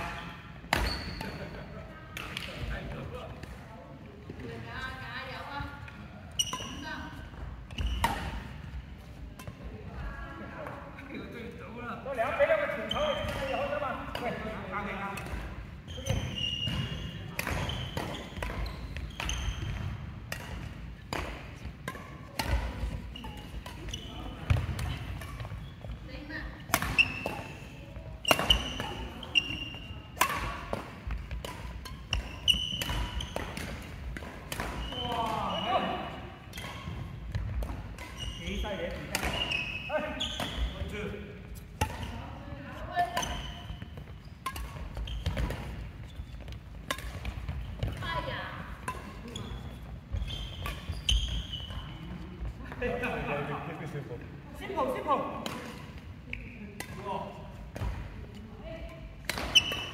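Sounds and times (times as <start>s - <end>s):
shoes squeaking on court: 0.0s - 1.7s, 6.3s - 9.2s, 12.6s - 14.6s, 15.6s - 53.5s, 59.2s - 59.9s
racket striking shuttlecock: 16.2s - 25.6s, 26.6s - 27.6s, 28.2s - 35.5s, 38.9s - 39.6s, 41.8s - 42.2s, 43.0s - 51.6s, 59.2s - 59.9s
players' voices: 33.6s - 36.6s, 51.5s - 59.7s.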